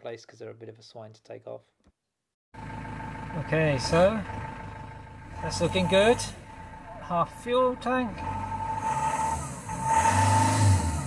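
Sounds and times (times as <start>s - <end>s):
diesel engine idling and revving: 2.6s - 11.0s.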